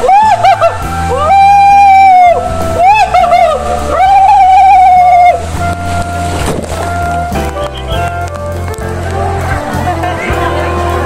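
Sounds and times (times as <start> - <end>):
rushing water: 0.0 - 11.0.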